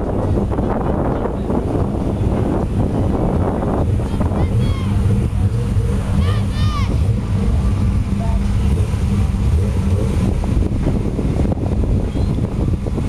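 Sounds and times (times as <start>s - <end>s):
sports car engine idling: 0.0s - 13.0s
wind buffeting microphone: 0.0s - 13.0s.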